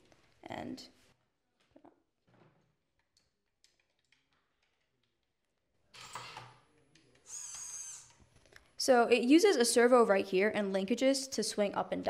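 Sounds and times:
small electric motors whirring: 0:07.2 - 0:08.2.

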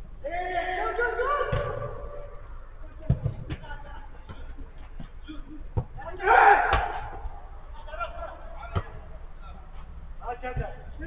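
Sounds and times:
low steady hum: 0:00.0 - 0:11.0
player shouting: 0:00.2 - 0:02.3, 0:06.0 - 0:08.6
football thud: 0:06.6 - 0:07.3.

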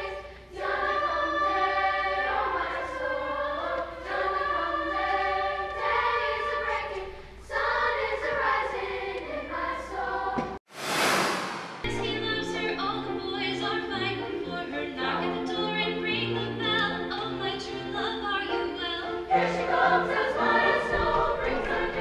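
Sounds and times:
youth choir singing: 0:00.0 - 0:10.6, 0:18.5 - 0:22.0.

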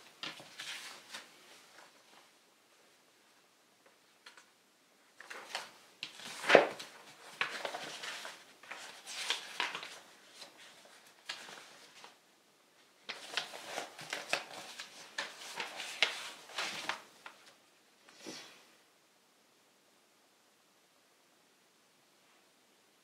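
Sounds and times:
paper pages rustling: 0:00.0 - 0:02.4, 0:05.1 - 0:12.2, 0:12.8 - 0:18.5.

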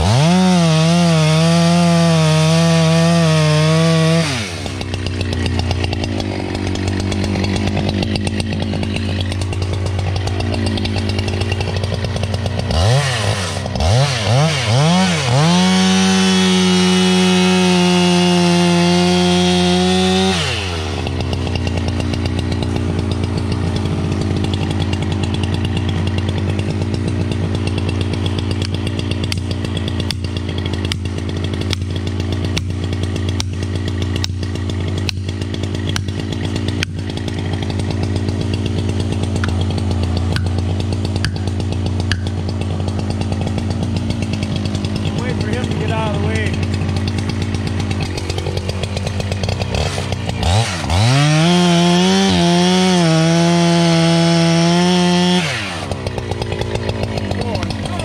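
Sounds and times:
chainsaw idling and revving: 0:00.0 - 0:58.0.

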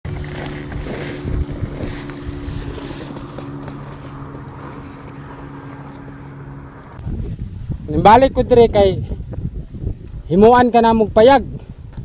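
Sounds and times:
wind rumbling on microphone: 0:00.0 - 0:12.0
low mechanical hum: 0:00.1 - 0:07.8.

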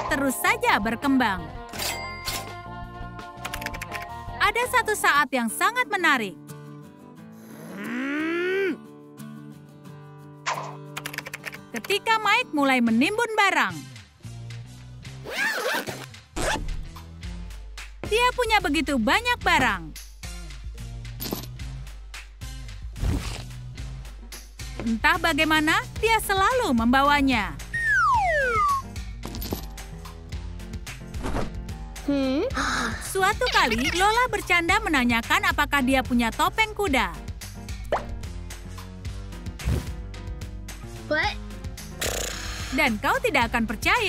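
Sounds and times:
background music: 0:00.0 - 0:44.0
backpack zipper pulled open: 0:07.4 - 0:08.2, 0:15.2 - 0:16.8, 0:23.0 - 0:23.5, 0:42.0 - 0:42.7
rising cartoon bloop: 0:27.8 - 0:28.8.

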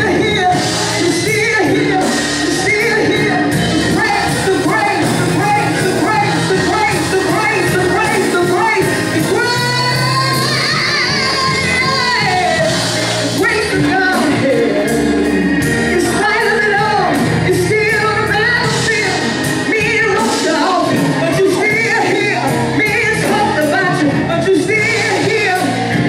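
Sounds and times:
instrumental backing with bass: 0:00.0 - 0:26.0
woman singing gospel: 0:00.0 - 0:26.0.

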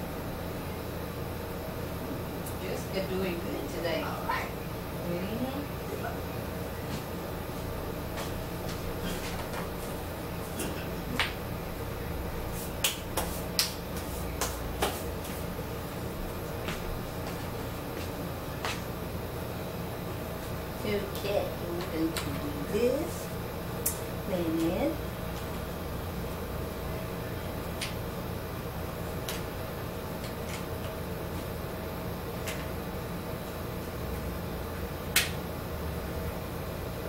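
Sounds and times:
background hum: 0:00.0 - 0:37.0
hand clap: 0:11.1 - 0:11.4, 0:12.8 - 0:15.1, 0:35.1 - 0:35.4.

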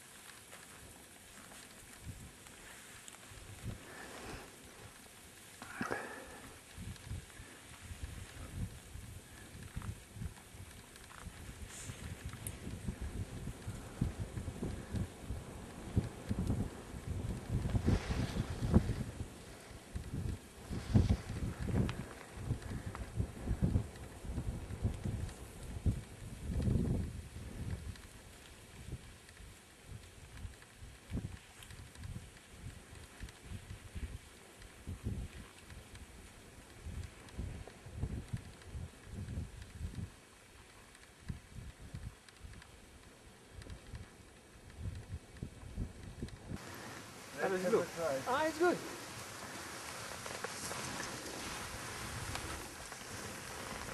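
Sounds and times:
wind buffeting microphone: 0:06.0 - 0:53.9.

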